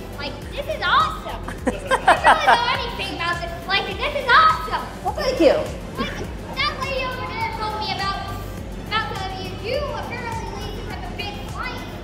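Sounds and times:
children talking and calling: 0.1s - 12.0s.

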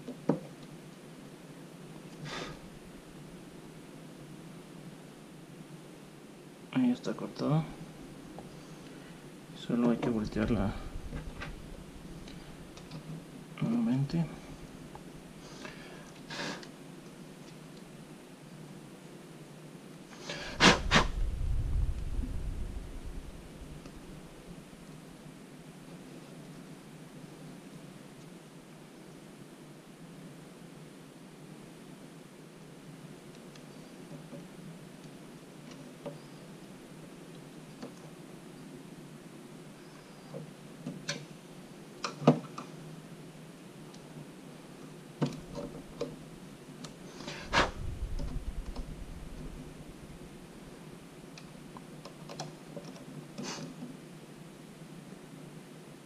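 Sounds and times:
heavy thumps with low rumble: 10.3s - 12.2s, 20.8s - 24.4s, 47.5s - 50.4s.

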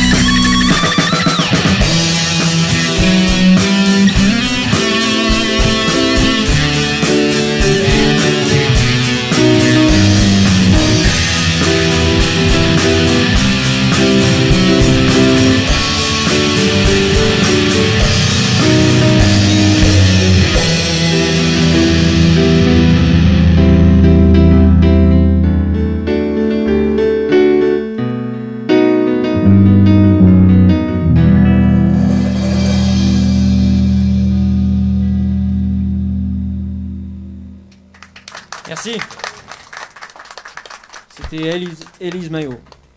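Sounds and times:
electric guitar sustained notes: 0.0s - 27.7s, 28.9s - 39.2s
rock band playing live: 0.0s - 27.7s, 29.2s - 36.7s
keyboard sustained notes: 0.0s - 39.2s
low drum hits: 7.6s - 16.2s.

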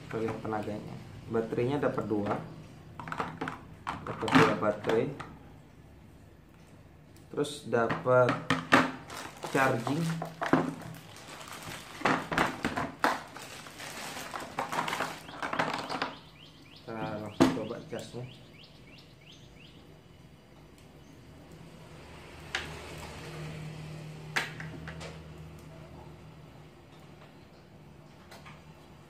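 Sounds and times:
plastic wrapping crinkling: 8.6s - 16.5s.

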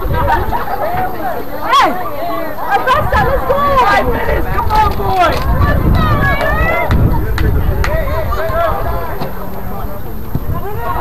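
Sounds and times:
people shouting: 0.0s - 11.0s
steady low rumble: 3.0s - 11.0s.

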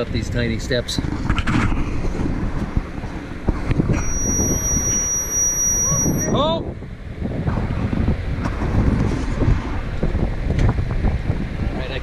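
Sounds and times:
wind buffeting microphone: 0.0s - 12.0s
high-pitched whistle: 4.0s - 6.4s.

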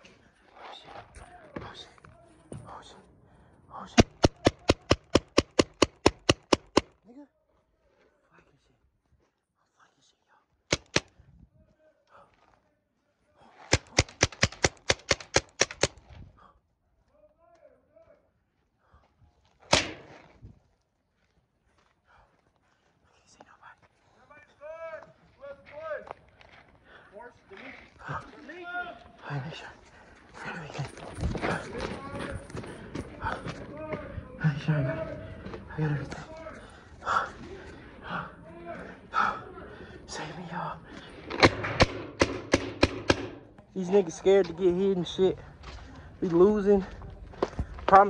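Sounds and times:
paintball marker rapid firing: 4.0s - 7.0s, 10.7s - 11.1s, 13.7s - 16.0s, 19.7s - 20.2s, 41.3s - 43.5s
sharp loud crack: 19.7s - 20.2s
voices calling out: 27.1s - 41.7s.

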